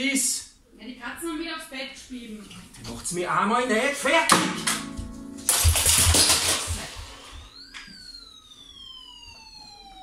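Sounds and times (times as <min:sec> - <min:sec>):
descending whistle tone: 0:07.4 - 0:10.0.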